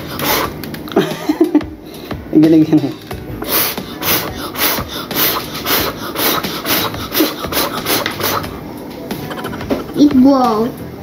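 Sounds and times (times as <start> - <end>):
child blowing across water: 3.4 - 8.5.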